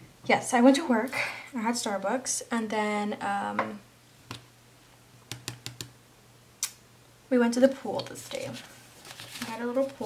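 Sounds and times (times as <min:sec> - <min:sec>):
fingernails tapping on sticker sheet: 0:05.3 - 0:05.9.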